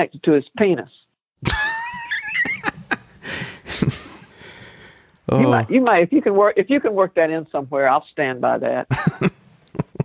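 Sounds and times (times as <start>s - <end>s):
person laughing: 1.4s - 4.2s, 8.9s - 10.0s.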